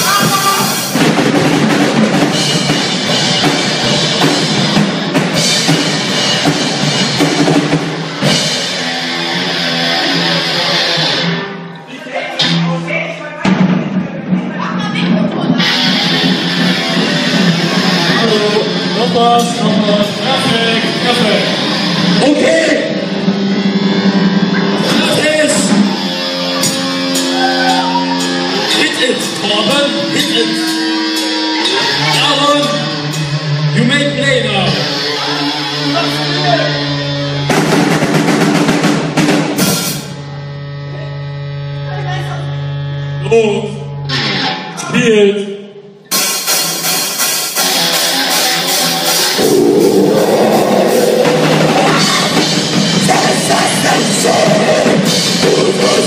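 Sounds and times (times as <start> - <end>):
metal band playing: 0.0 - 42.7, 43.8 - 45.1, 46.0 - 56.0
distorted electric guitar drone: 0.0 - 45.0, 46.0 - 56.0.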